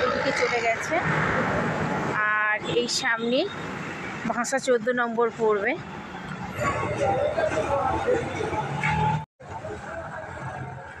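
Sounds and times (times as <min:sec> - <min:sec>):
people talking: 0:00.0 - 0:01.0
street traffic: 0:00.0 - 0:11.0.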